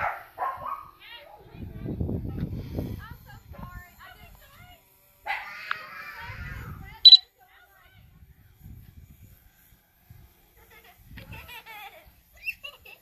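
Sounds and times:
faint voices outdoors: 0:00.0 - 0:13.0
wind on microphone: 0:01.6 - 0:03.8, 0:08.0 - 0:09.4.

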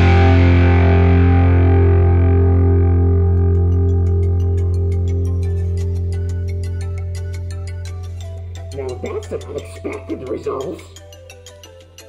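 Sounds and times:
distorted electric guitar chord: 0:00.0 - 0:08.5.

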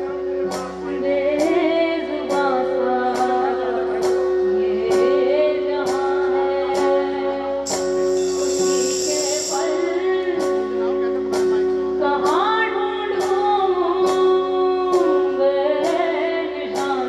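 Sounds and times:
woman singing into microphone: 0:00.0 - 0:11.3, 0:11.9 - 0:17.0
backing track with steady beat: 0:00.0 - 0:17.0.

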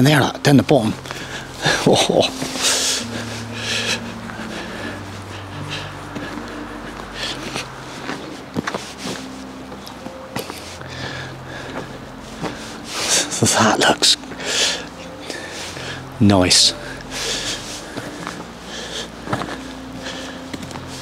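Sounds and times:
low steady hum: 0:00.0 - 0:21.0
man breathing and sniffing: 0:01.0 - 0:13.5, 0:14.2 - 0:21.0.

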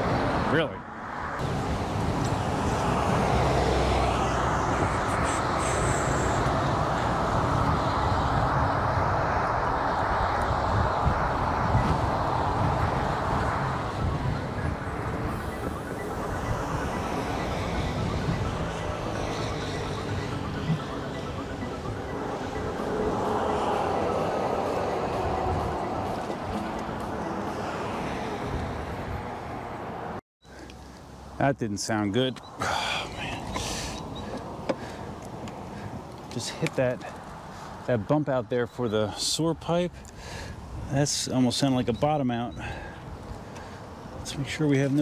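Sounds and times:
wind rushing over microphone: 0:00.0 - 0:30.2, 0:39.8 - 0:45.0
tyre and road noise: 0:00.0 - 0:45.0.

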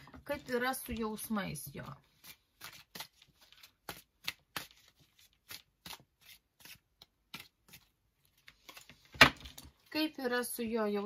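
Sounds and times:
playing cards shuffling: 0:02.1 - 0:09.7.

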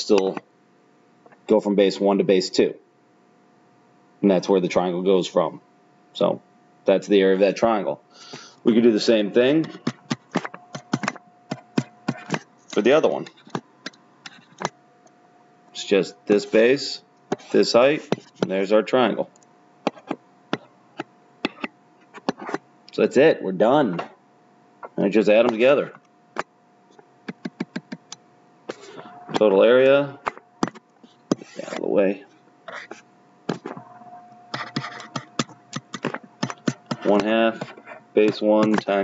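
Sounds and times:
stylus clicking on tablet screen: 0:34.6 - 0:37.7.

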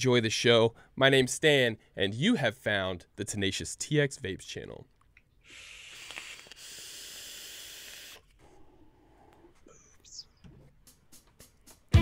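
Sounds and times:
air hissing through vape: 0:05.5 - 0:08.4.

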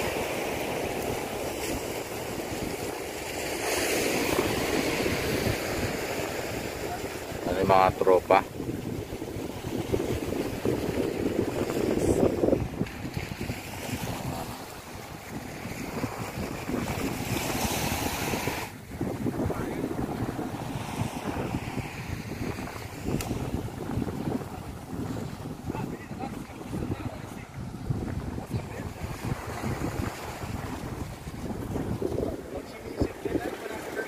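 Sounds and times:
sea waves against rocky shore: 0:00.0 - 0:34.0
wind buffeting microphone: 0:00.0 - 0:34.0.

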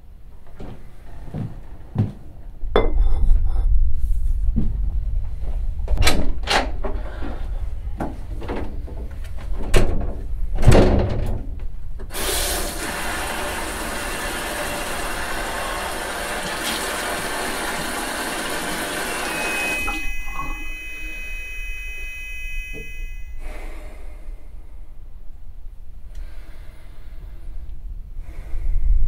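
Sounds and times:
tap water running into sink: 0:12.1 - 0:20.0
faint high whine: 0:18.7 - 0:24.9.

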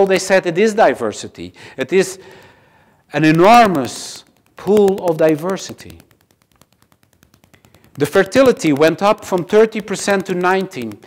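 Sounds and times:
rapid faint clicks: 0:01.8 - 0:11.0.

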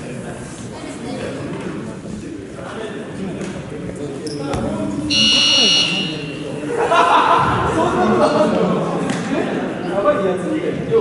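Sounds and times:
scoreboard buzzer: 0:05.1 - 0:06.5.

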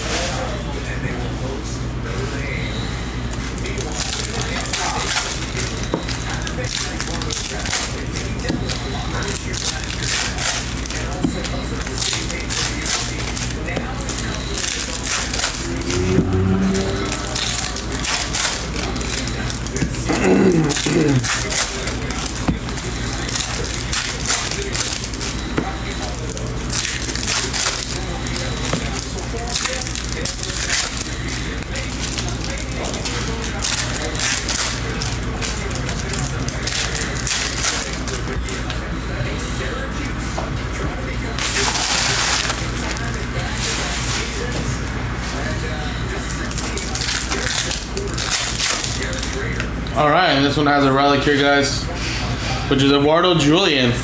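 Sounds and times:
foil wrappers crinkling and tearing: 0:03.3 - 0:38.7, 0:41.3 - 0:44.7, 0:45.3 - 0:49.7
low steady hum: 0:10.1 - 0:36.1
brief pitched sound: 0:15.7 - 0:17.6
falling tone: 0:15.7 - 0:17.6.

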